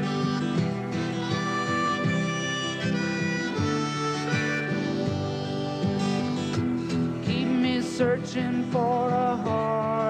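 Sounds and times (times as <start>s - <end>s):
harmonica melody: 0.0s - 10.0s
strummed acoustic guitar: 0.0s - 10.0s.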